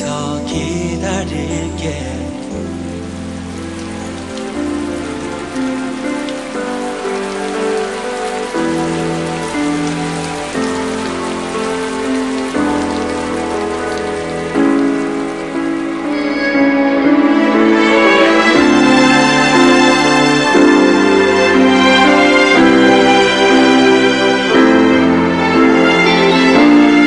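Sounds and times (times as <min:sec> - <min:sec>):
slow instrumental held chords: 0:00.0 - 0:27.0
steady rain falling: 0:00.0 - 0:27.0.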